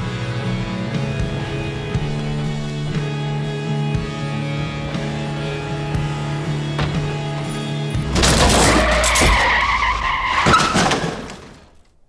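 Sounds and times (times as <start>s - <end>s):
car tyres squealing: 5.6s - 11.5s.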